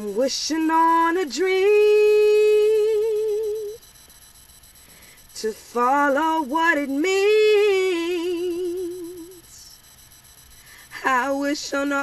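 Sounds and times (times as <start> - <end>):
woman singing unaccompanied: 0.0 - 3.8, 5.4 - 9.8, 10.9 - 12.0.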